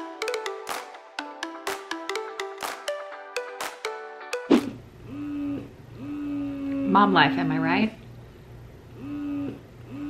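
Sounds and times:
woman humming: 5.1 - 6.9, 9.0 - 10.0.

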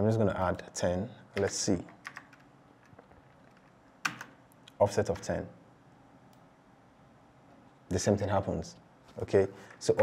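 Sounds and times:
computer keyboard keystrokes: 1.4 - 4.4.

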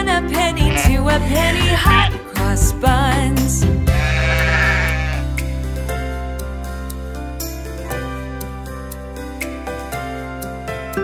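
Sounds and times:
children's song backing music: 0.0 - 4.2
sheep bleat: 0.6 - 2.2, 3.9 - 5.3.

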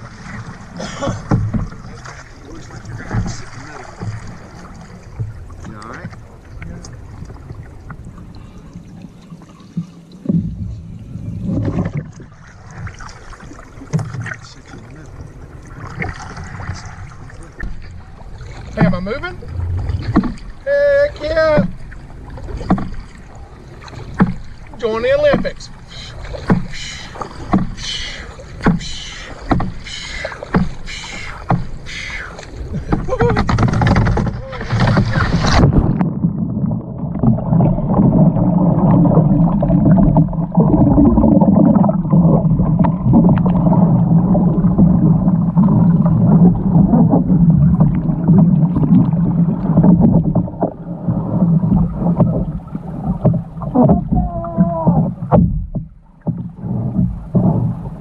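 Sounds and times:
paddle strokes splashing water: 0.0 - 58.0
underwater churning: 0.0 - 58.0.

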